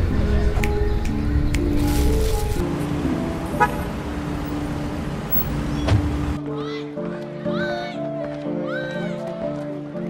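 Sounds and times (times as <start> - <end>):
street traffic noise: 0.0 - 6.5.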